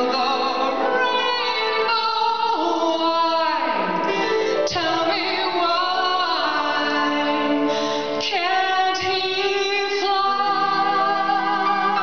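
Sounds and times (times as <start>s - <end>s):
woman singing with vibrato: 0.0s - 12.0s.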